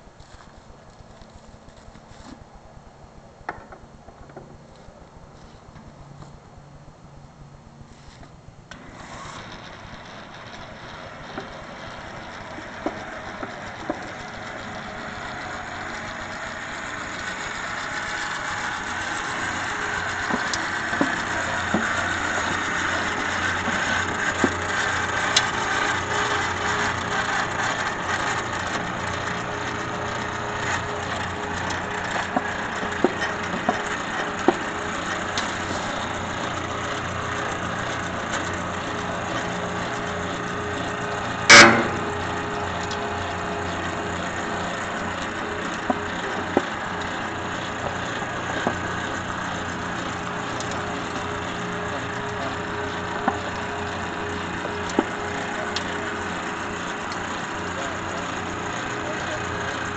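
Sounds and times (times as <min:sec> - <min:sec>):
pipe-threading machine running: 0:08.7 - 0:59.9
loud metallic clank: 0:41.4 - 0:42.9.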